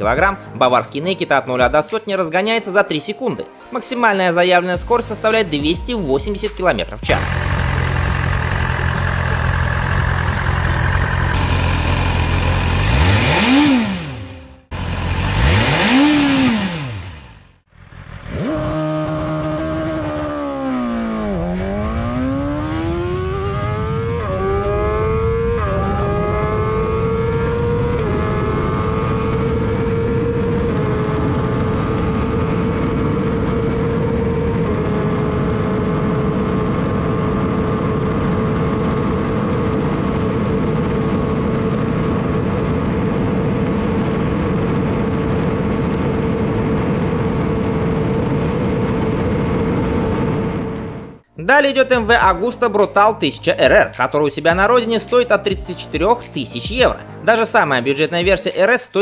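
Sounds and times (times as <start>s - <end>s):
motorcycle engine revving: 7.0s - 51.3s
motorcycle engine idling: 7.1s - 18.4s
motorcycle accelerating through gears: 7.1s - 51.3s.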